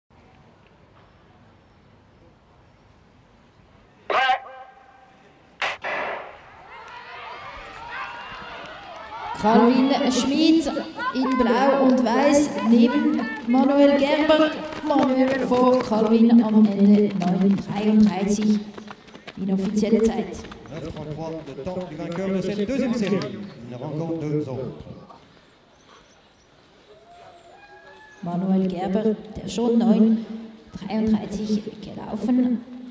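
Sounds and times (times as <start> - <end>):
outdoor ambience: 0.1 - 32.9
starter's shouted command: 4.1 - 4.9
starting gun crack: 5.6 - 7.0
spectators cheering and shouting: 5.6 - 14.7.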